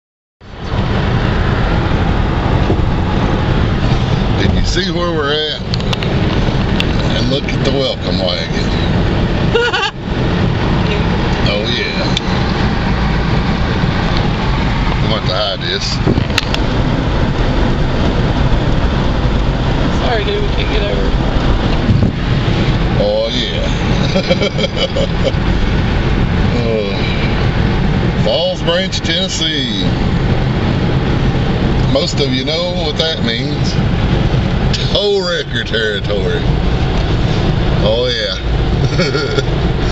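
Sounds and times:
car cabin road noise: 0:00.4 - 0:39.9.

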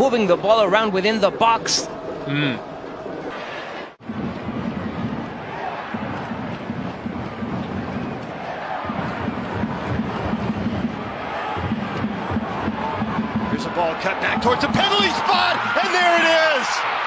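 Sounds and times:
stadium crowd din: 0:03.4 - 0:17.0.

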